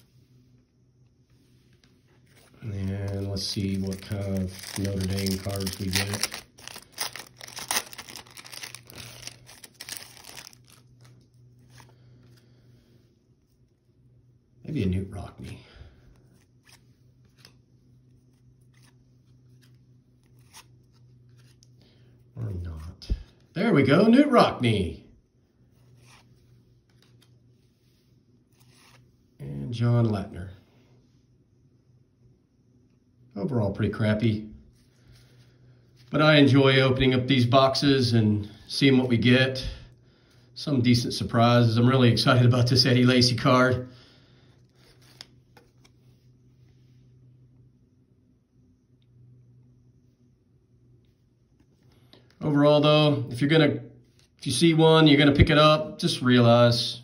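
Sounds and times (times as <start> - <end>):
low steady hum: 0.0 - 57.0
trading cards flipped by hand: 1.7 - 11.9, 16.4 - 17.6, 18.3 - 21.7, 26.0 - 27.4, 44.8 - 46.1.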